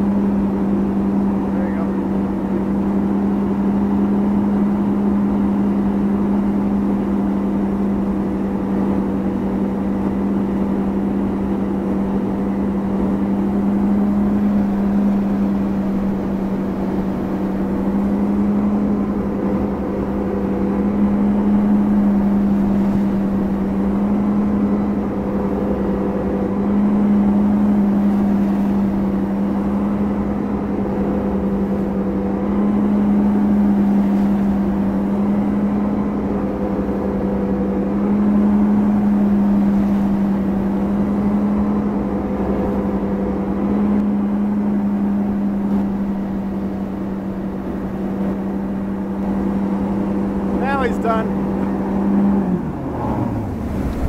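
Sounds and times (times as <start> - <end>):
boat engine drone: 0.0 - 54.0.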